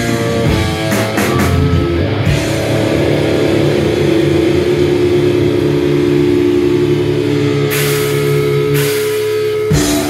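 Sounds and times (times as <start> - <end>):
cymbals: 0.0 - 10.0
distorted droning guitar and bass: 0.0 - 10.0.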